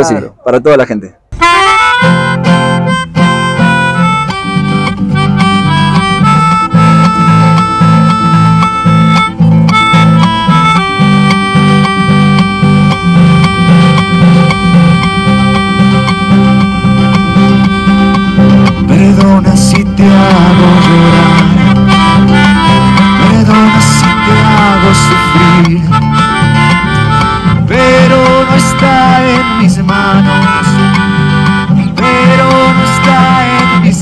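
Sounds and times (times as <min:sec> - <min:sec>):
acoustic guitar strumming: 0:01.3 - 0:34.0
melodica melody: 0:01.4 - 0:34.0.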